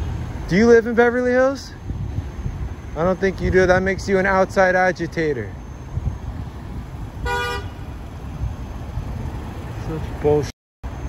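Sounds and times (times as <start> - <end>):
low road traffic noise: 0.0 - 11.0
car horn toot: 7.2 - 8.0.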